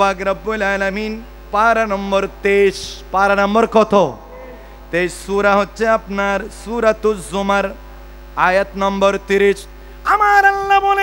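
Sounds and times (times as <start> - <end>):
low electrical mains hum: 0.0 - 11.0
man speaking over loudspeakers: 0.0 - 11.0.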